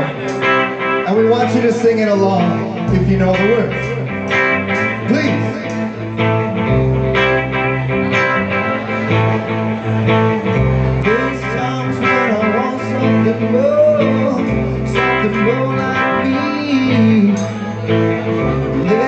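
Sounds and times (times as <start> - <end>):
bass guitar: 0.0 - 19.0
electric guitars: 0.0 - 19.0
person singing: 10.9 - 19.0.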